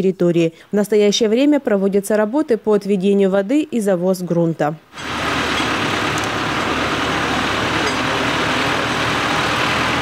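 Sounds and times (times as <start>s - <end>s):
tractor diesel engine running: 5.0s - 10.0s.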